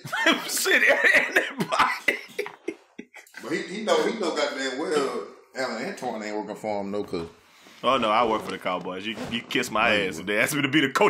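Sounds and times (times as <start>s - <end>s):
man coughing: 0.0s - 3.2s.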